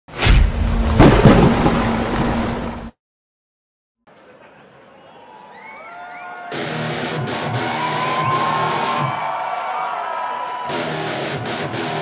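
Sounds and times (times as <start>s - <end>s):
heavy hit: 0.2s - 2.4s.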